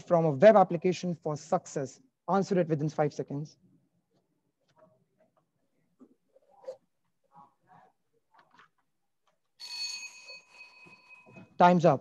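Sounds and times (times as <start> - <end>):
bell ringing: 9.6 - 11.6.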